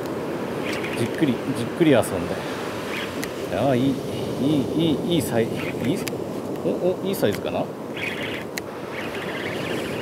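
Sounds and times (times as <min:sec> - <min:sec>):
wind: 0:00.0 - 0:10.0
surf rushing: 0:00.2 - 0:10.0.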